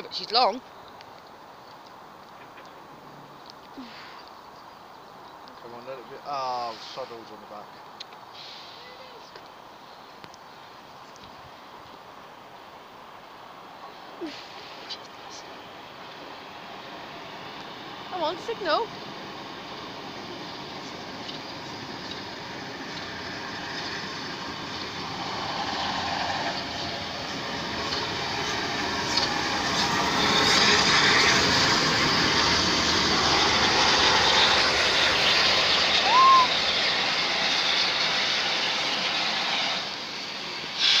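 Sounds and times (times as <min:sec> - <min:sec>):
steam train passing: 0:05.6 - 0:09.3, 0:10.1 - 0:41.0.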